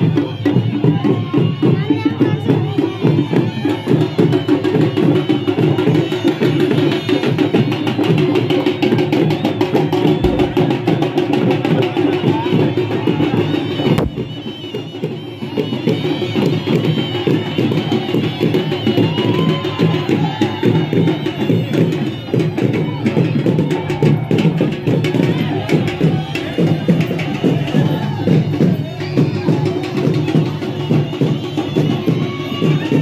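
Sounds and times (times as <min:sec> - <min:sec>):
fast steady drumming: 0:00.0 - 0:33.0
voices in music: 0:00.0 - 0:33.0.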